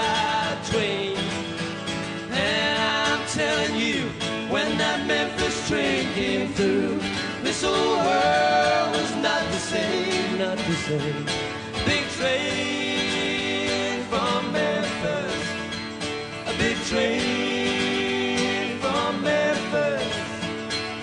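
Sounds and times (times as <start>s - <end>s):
acoustic guitar: 0.0s - 21.0s
live country band: 0.0s - 21.0s.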